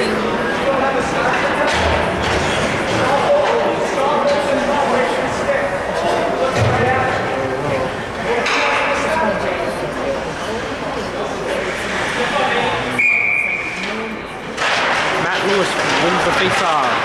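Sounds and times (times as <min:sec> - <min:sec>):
hockey sticks and puck clicking: 0:13.8 - 0:17.0.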